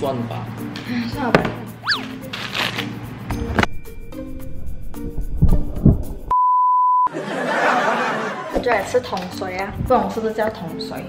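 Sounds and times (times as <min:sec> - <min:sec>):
music: 0:00.0 - 0:06.3, 0:08.5 - 0:11.0.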